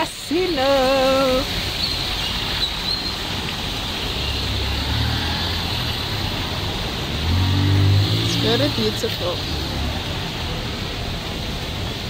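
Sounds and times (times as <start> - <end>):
steady outdoor hiss: 0.0 - 12.0
vehicle engine hum passing: 1.4 - 12.0.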